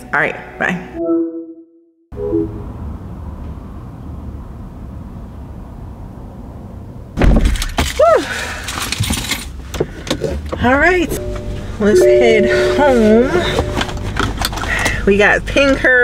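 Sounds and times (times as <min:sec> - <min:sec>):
rustling and knocking in car: 0:07.2 - 0:08.0
car engine idling: 0:09.6 - 0:16.0.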